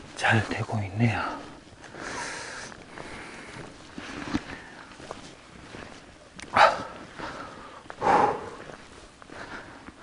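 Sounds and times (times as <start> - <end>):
dog barking: 6.6 - 7.0.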